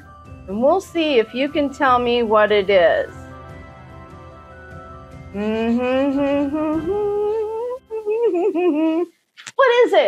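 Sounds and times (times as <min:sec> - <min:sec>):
woman humming a tune: 0:05.3 - 0:09.2.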